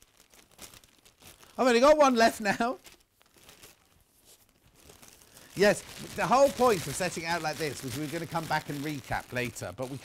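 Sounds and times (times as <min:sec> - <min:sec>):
plastic bin bag rustling: 0:00.0 - 0:10.0.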